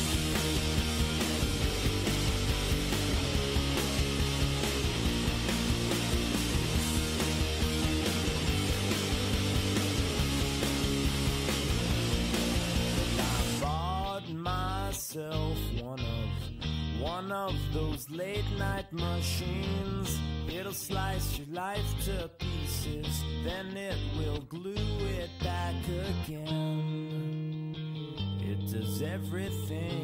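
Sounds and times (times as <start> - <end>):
instrumental rock music: 0.0 - 30.0.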